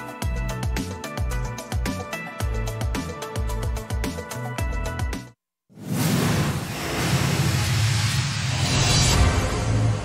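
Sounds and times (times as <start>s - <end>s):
rushing whoosh: 5.8s - 10.0s.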